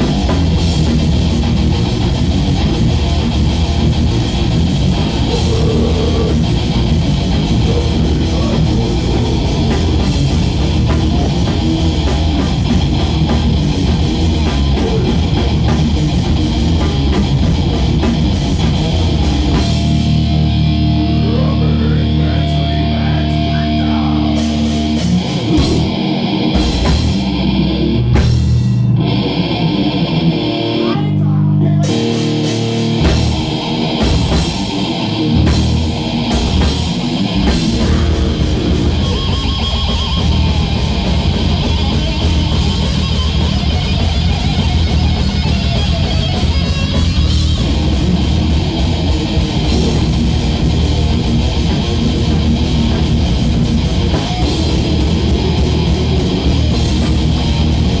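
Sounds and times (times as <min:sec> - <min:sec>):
heavy rock music: 0:00.0 - 0:58.0.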